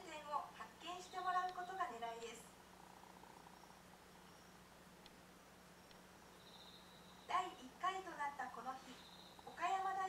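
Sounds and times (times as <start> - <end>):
woman narrating: 0.0 - 2.5, 7.3 - 10.0
low hum and hiss: 0.0 - 10.0
faint rough buzzing: 0.4 - 7.8, 8.5 - 9.8.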